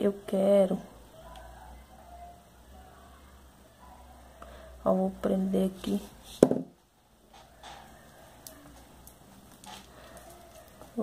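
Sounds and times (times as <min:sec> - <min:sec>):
beads ticking and rustling: 0:07.4 - 0:11.0.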